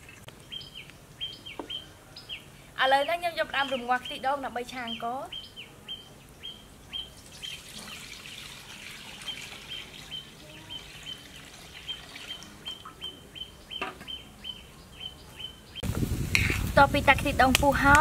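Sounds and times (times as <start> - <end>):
bird calling: 0.0 - 15.8.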